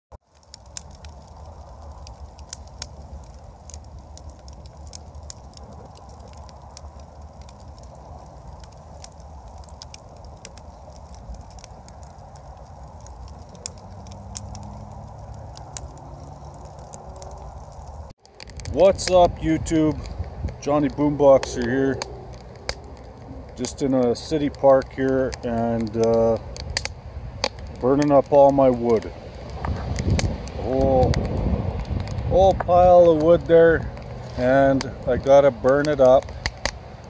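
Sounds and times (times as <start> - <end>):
wood fire crackling and popping: 0.2 - 37.0.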